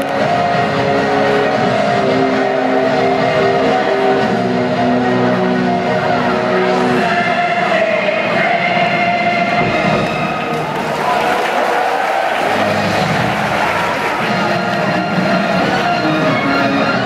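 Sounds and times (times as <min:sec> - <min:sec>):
music over pa system: 0:00.0 - 0:17.0
stadium crowd voices: 0:00.0 - 0:17.0.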